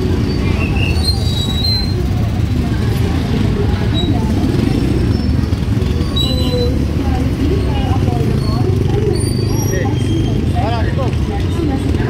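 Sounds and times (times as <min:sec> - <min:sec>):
traffic engines rumbling: 0:00.0 - 0:12.0.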